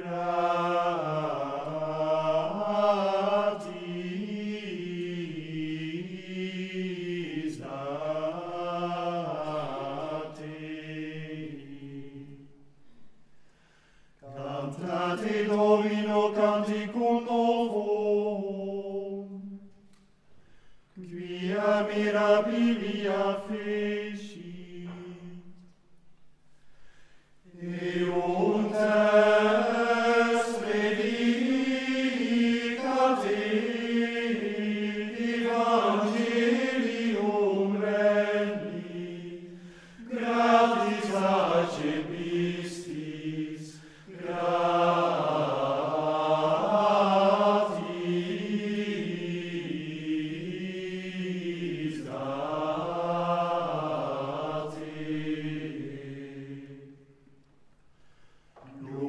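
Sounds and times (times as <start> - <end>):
men's choir chanting in unison: 0.0 - 12.4, 14.2 - 19.6, 21.0 - 25.5, 27.5 - 57.1, 58.6 - 59.0.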